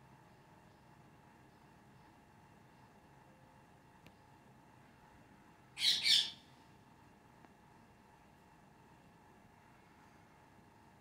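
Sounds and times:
parakeet screeching: 5.8 - 6.4.

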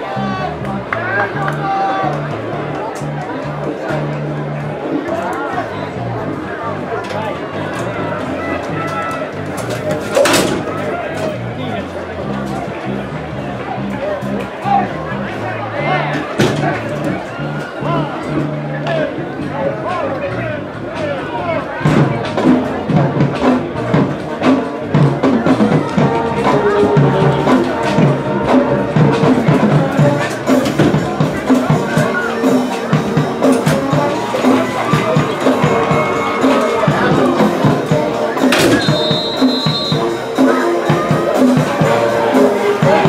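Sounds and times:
crowd noise: 0.0 - 43.0
marching band playing: 21.8 - 43.0.

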